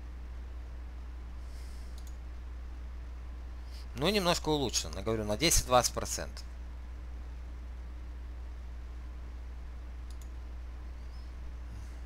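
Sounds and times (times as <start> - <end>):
low hum: 0.0 - 12.0
computer mouse clicks: 1.9 - 2.2, 10.0 - 10.4.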